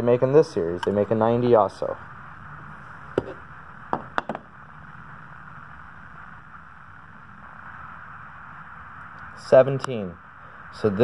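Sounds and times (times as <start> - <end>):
low background hiss: 0.0 - 11.0.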